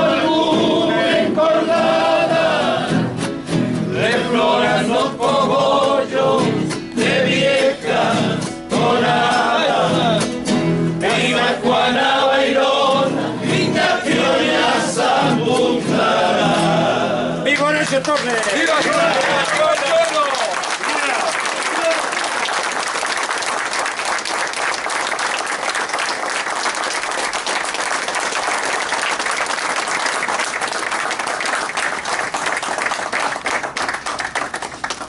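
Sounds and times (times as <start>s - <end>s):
men singing together: 0.0s - 3.2s, 3.8s - 17.4s
strummed acoustic guitars: 0.0s - 17.5s.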